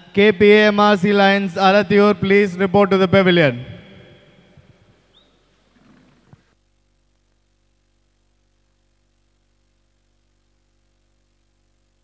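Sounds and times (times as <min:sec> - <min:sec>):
public address announcement echo: 0:00.0 - 0:04.8
reverberant hall ambience: 0:00.0 - 0:06.4.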